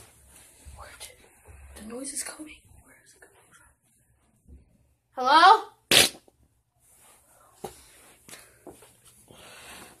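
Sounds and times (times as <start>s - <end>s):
faint footsteps and shuffling: 0.0s - 5.0s, 6.7s - 10.0s.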